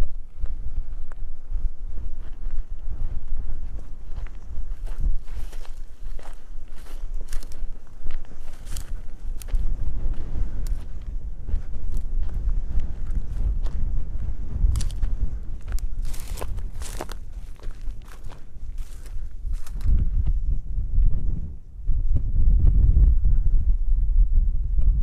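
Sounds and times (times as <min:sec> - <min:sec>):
steady low rumble: 0:00.0 - 0:25.0
footsteps on loose stones: 0:02.0 - 0:20.0.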